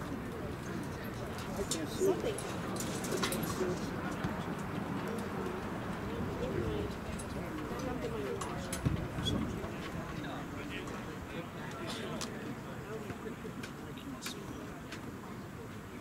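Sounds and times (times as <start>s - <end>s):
distant voices outdoors: 0.0s - 16.0s.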